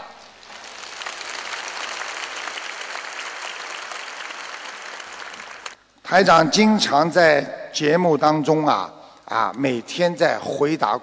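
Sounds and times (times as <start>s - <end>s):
large audience clapping: 0.0s - 5.8s.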